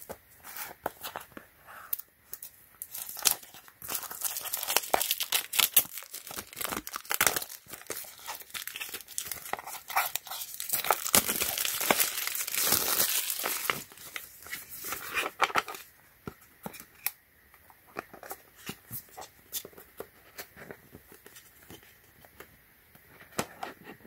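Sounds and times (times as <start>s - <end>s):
plastic shrink wrap crinkling: 0.0s - 15.9s.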